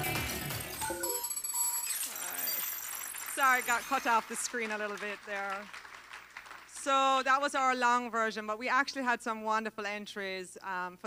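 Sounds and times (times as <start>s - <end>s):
music: 0.0s - 1.2s
thin steady tone: 0.8s - 4.1s.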